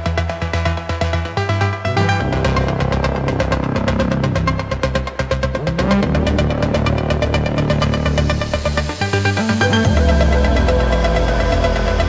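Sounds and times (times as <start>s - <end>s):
techno music: 0.0s - 12.0s.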